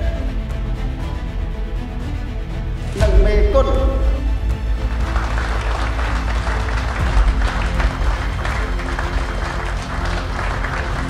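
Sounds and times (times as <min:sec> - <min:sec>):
background music with low bass: 0:00.0 - 0:11.0
audience applause: 0:04.7 - 0:11.0.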